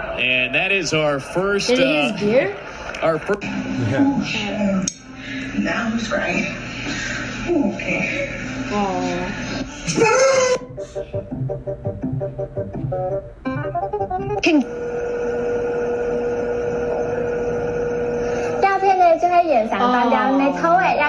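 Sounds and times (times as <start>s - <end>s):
person speaking: 1.7s - 2.4s.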